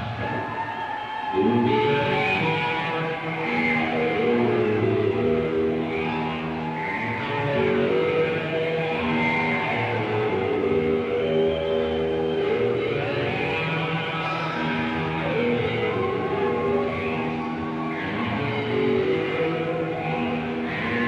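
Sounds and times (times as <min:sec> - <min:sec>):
held electric guitar chords: 0:00.0 - 0:21.0
heavy metal band playing live: 0:12.2 - 0:21.0.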